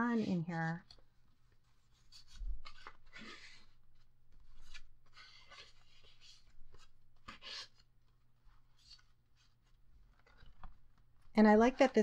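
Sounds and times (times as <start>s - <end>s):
cards sliding and rustling: 0.2s - 12.0s.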